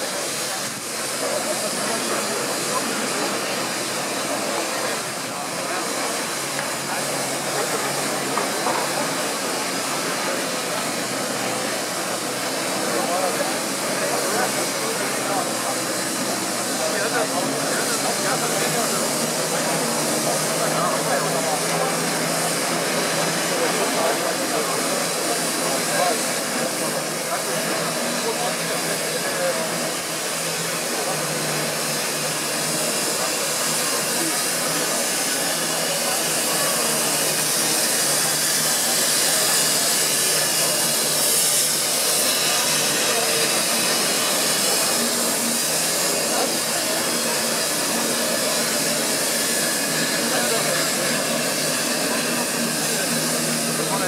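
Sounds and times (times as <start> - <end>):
crowd chatter: 0.0 - 54.0
steam locomotive hissing: 0.0 - 54.0.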